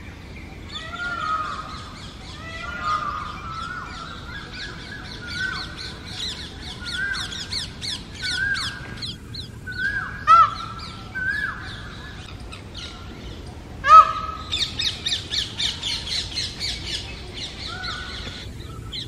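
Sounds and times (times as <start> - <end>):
small birds chirping: 0.0 - 19.0
peacock calling loudly: 0.6 - 19.0.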